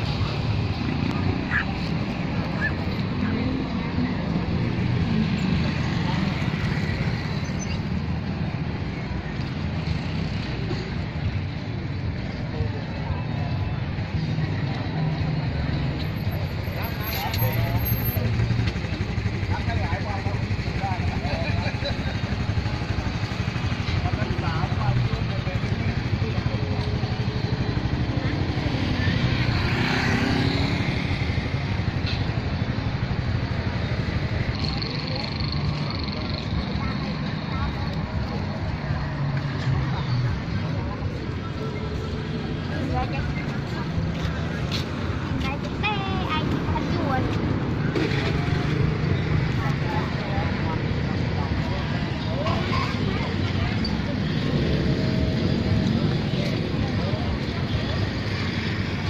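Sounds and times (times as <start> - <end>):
people talking: 0.0 - 7.7, 12.1 - 30.6, 34.2 - 59.0
motorbike and car engines passing: 0.0 - 59.0.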